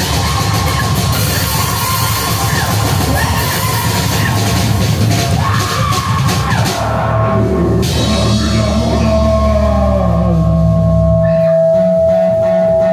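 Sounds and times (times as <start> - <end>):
rock band music: 0.0 - 12.9.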